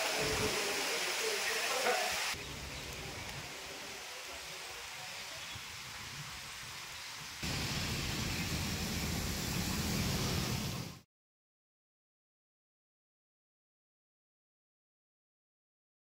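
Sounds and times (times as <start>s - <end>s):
steady rain falling: 0.0s - 11.0s.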